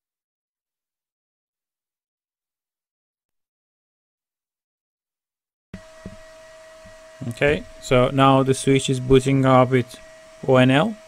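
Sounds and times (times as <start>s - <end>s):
cooling fans humming with high whine: 5.8s - 11.0s.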